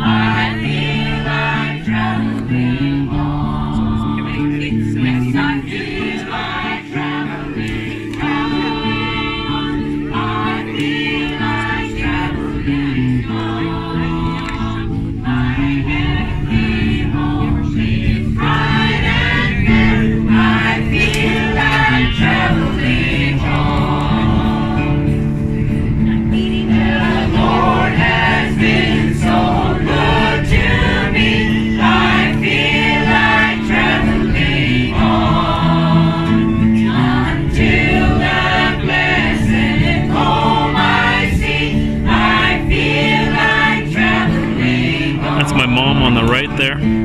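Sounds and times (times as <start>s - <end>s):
woman singing into a microphone: 0.0s - 25.1s
amplified guitar: 0.0s - 47.0s
group of voices singing: 0.0s - 47.0s.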